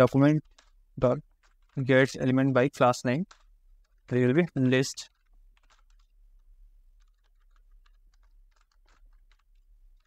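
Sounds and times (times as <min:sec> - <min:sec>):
typing on computer keyboard: 0:00.0 - 0:10.0.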